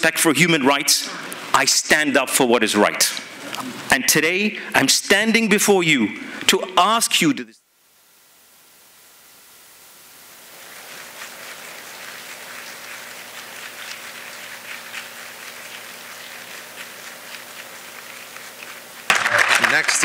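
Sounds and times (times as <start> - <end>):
faint steady hum: 0.0 - 20.0
audience applause: 19.1 - 20.0.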